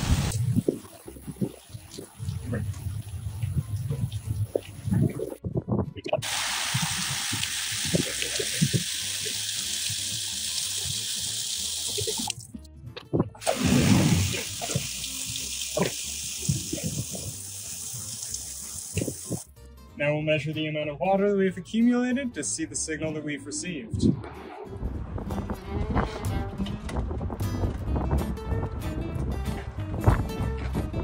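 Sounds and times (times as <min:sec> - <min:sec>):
hose spraying water on plastic: 0:06.2 - 0:12.4, 0:13.4 - 0:19.5.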